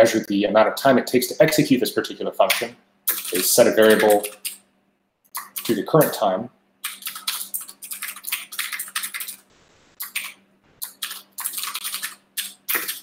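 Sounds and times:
fast typing on keyboard: 0:03.1 - 0:04.6, 0:06.8 - 0:13.0.

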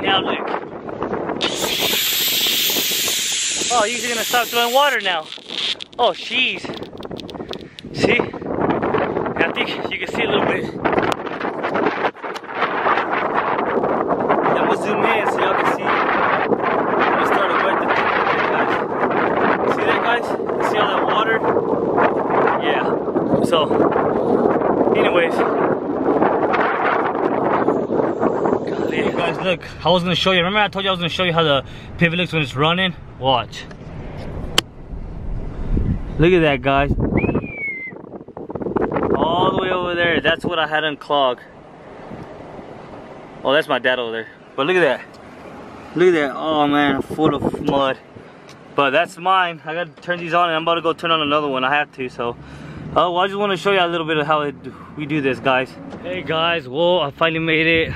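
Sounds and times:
wind buffeting microphone: 0:00.0 - 0:57.9
thin high whistle: 0:01.4 - 0:04.9, 0:37.2 - 0:38.0.

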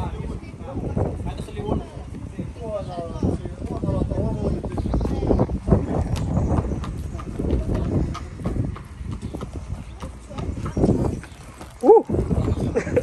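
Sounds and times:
horse hooves on hard ground: 0:03.4 - 0:13.0.

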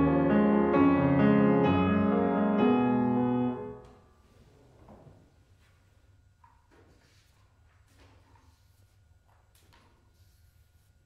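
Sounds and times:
grand piano chord: 0:00.0 - 0:04.2.

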